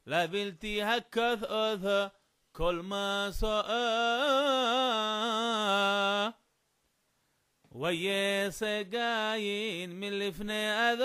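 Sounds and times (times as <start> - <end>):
man chanting: 0.0 - 6.4, 7.8 - 11.0.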